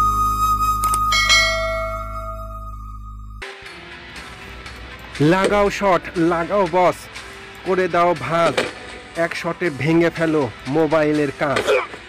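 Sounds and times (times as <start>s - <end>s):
bell ding: 1.1s - 3.0s.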